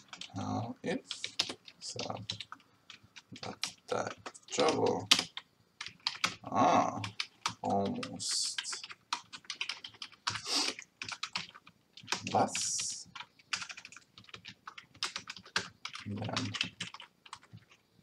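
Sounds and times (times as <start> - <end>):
typing on computer keyboard: 0.0 - 0.4, 1.0 - 17.8.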